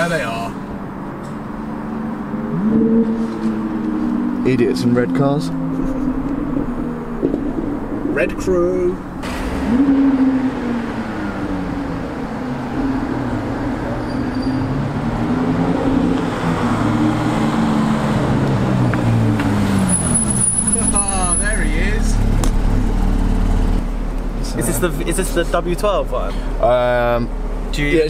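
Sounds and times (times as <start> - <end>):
sports car engines rolling slowly: 0.0 - 28.0.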